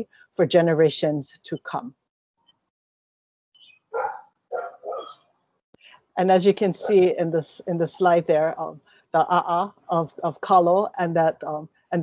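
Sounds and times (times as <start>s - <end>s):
dog barking: 3.9s - 5.2s
dog yipping: 3.9s - 5.2s.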